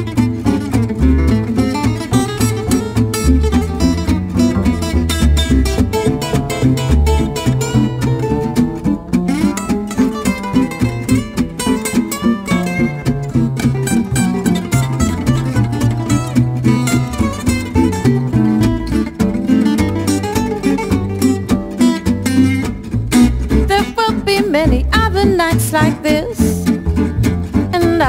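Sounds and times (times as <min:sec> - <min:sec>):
acoustic guitar solo melody: 0:00.0 - 0:28.0
acoustic guitar strumming chords: 0:00.0 - 0:28.0
plucked double bass: 0:00.0 - 0:28.0.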